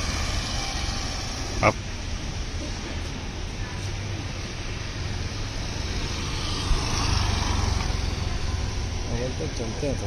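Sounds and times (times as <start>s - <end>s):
vehicle passing with low rumble: 0.0s - 10.0s.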